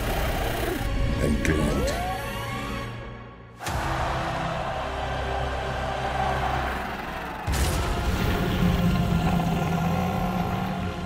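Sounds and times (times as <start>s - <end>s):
dragon's deep growl: 6.5s - 11.0s.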